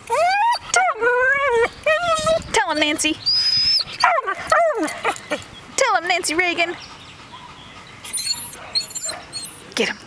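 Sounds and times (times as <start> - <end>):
dog whining: 0.1 - 2.5, 3.3 - 5.5, 7.4 - 9.6.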